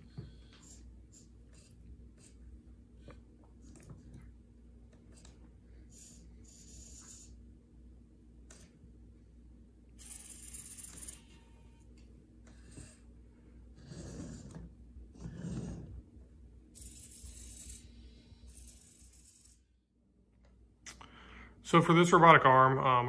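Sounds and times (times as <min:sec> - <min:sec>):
servo motors whirring: 0:10.0 - 0:11.8, 0:16.8 - 0:19.6.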